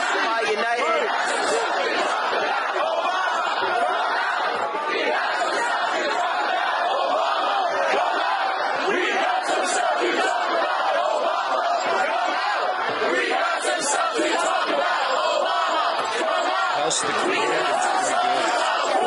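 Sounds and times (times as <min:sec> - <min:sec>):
crowd shouting and chanting: 0:00.0 - 0:19.0.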